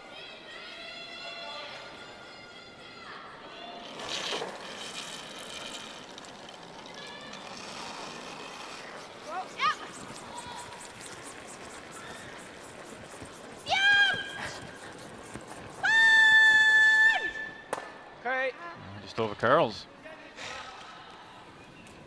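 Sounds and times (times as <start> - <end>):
brush sweeping ice: 3.9 - 16.2.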